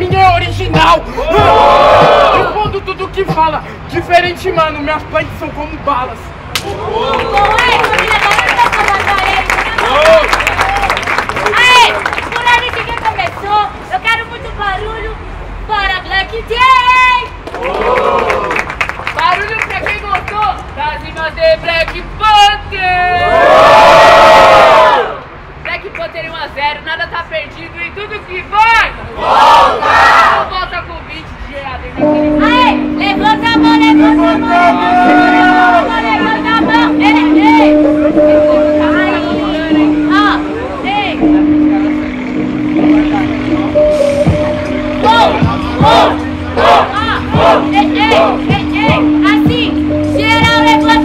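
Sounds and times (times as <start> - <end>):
hip-hop beat with deep bass: 0.0 - 4.8, 32.1 - 51.0
crowd shouting and whooping: 1.2 - 2.6, 6.6 - 8.6, 17.5 - 18.6, 34.5 - 36.0, 45.0 - 48.4.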